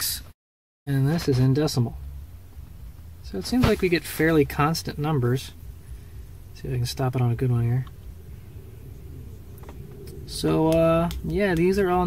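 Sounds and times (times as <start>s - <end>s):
low background hum: 0.9s - 12.0s.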